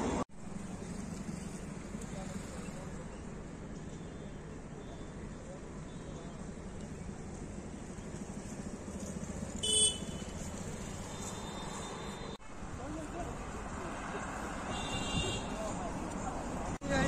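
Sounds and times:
road traffic passing: 0.0s - 17.0s
vehicle horn toot: 5.8s - 6.4s, 9.6s - 10.4s, 11.1s - 12.4s, 14.7s - 15.7s.

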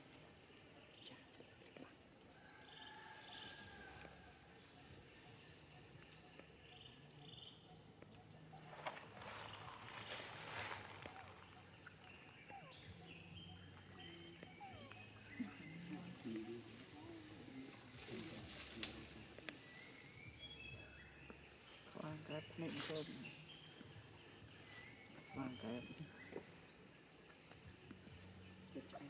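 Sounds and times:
faint bird chirps: 0.0s - 29.0s
rustling noise: 8.6s - 11.6s.

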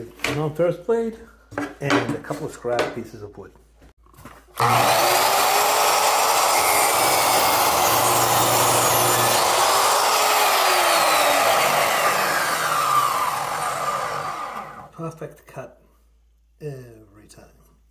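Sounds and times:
chop saw cutting metal trim: 4.6s - 14.9s.

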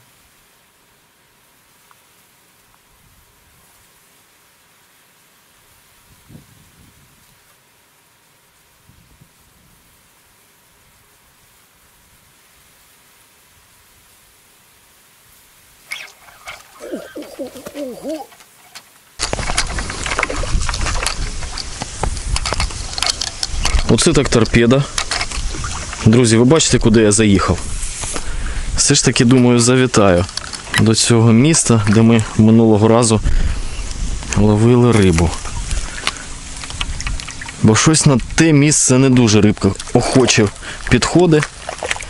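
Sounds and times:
wind buffeting microphone: 6.0s - 7.4s, 19.2s - 42.0s.

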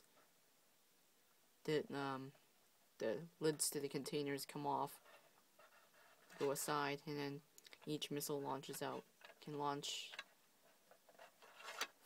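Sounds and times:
faint clicks of toy handling: 8.7s - 12.0s.

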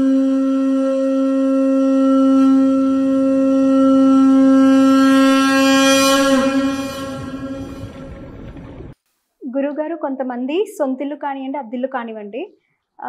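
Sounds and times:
conch shell blown: 0.0s - 9.0s.

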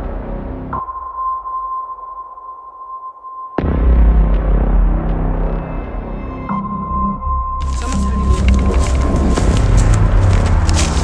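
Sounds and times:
horror soundtrack music: 0.0s - 2.9s, 3.5s - 11.0s.

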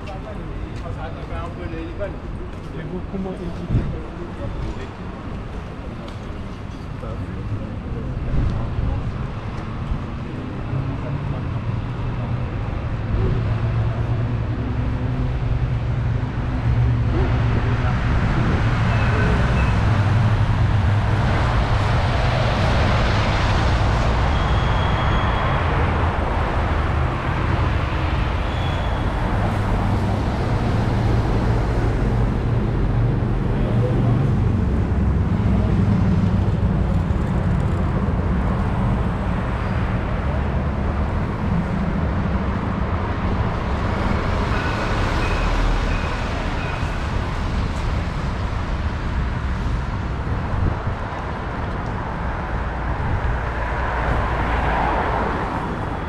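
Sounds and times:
car and bus engines: 0.0s - 56.0s
tyres on the road: 0.0s - 56.0s.

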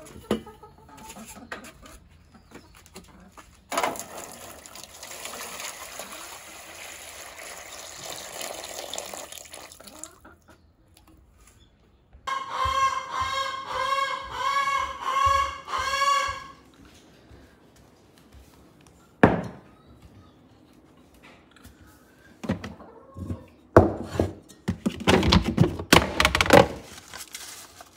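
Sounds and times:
hose water spraying into metal pan: 3.9s - 9.8s
loud pitched animal calls: 12.3s - 16.6s.

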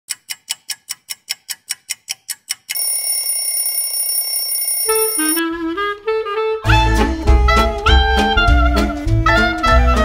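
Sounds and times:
bright metallic ticks: 0.1s - 4.0s
steady high ringing tone: 2.8s - 5.4s.

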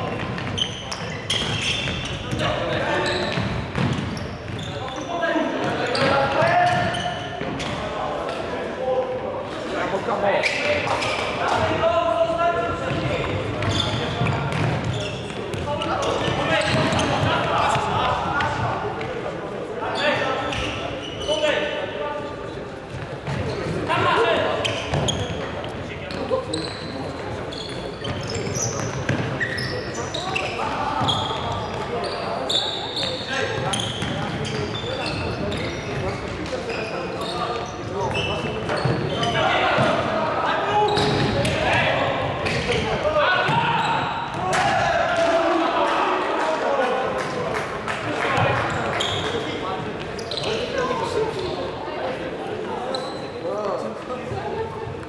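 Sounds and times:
shoes squeaking: 0.0s - 7.9s, 10.4s - 11.4s, 12.9s - 18.6s, 22.9s - 44.4s, 48.4s - 55.0s.

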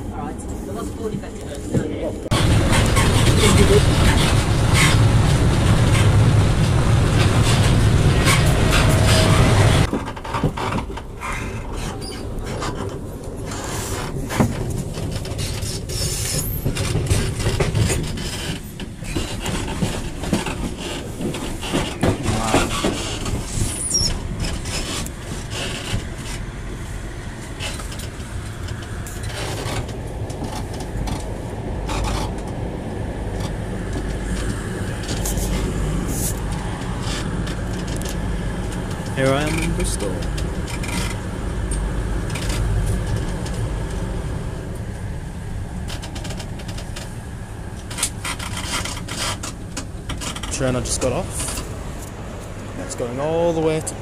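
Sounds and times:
rising train whine: 0.0s - 10.0s, 10.8s - 54.0s
train rumble: 0.0s - 54.0s
high train squeal: 7.1s - 9.9s, 11.2s - 12.8s, 15.4s - 16.8s, 20.8s - 26.3s.

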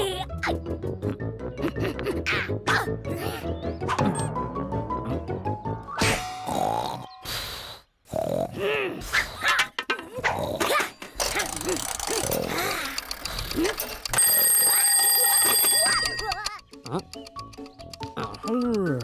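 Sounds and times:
cartoon bunny vocal sounds: 8.1s - 9.6s
twin-bell alarm clock ringing: 13.8s - 16.6s.

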